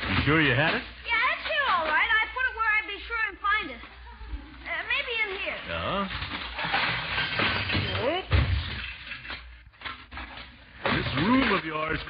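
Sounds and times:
objects clattering and crashing: 0.0 - 2.4, 5.4 - 12.0.

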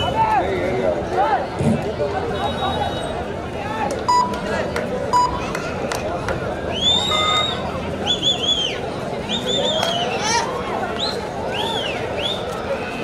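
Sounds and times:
crowd chattering: 0.0 - 13.0
shrill whistles: 6.7 - 10.2.

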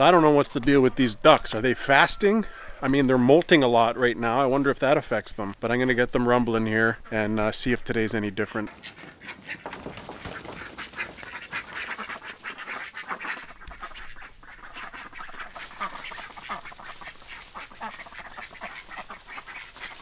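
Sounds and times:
young ducks quacking: 8.4 - 20.0.

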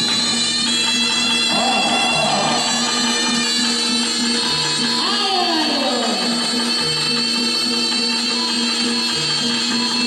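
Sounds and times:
shrill reed trumpet: 0.0 - 6.8.

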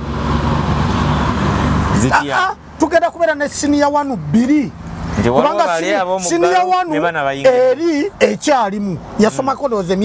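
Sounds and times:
vehicle engine and road noise: 0.0 - 10.0
people talking: 2.0 - 10.0.

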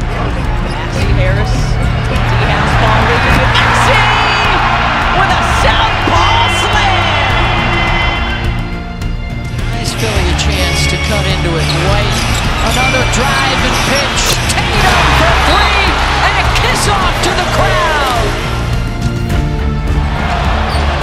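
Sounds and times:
crowd noise: 0.0 - 8.8, 9.8 - 19.0
background music: 0.0 - 21.0.

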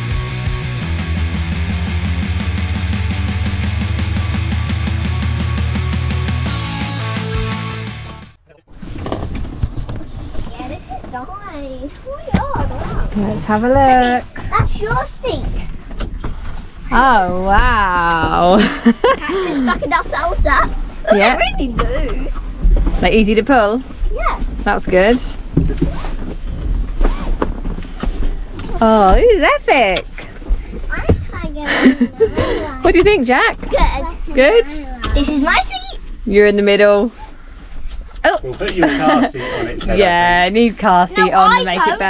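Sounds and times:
rock music: 0.0 - 8.4
steady outdoor noise: 8.3 - 42.0
knocks and rustles: 8.7 - 21.0, 21.6 - 31.8.

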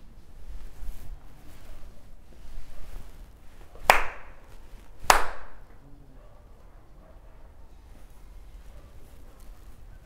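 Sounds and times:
sharp handclaps with ringing tail: 3.9 - 4.3, 5.0 - 5.6.

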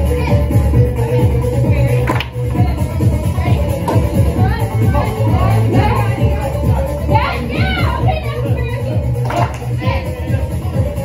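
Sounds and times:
loud music with steady bass: 0.0 - 11.0
teenagers shouting and chattering: 0.0 - 11.0.

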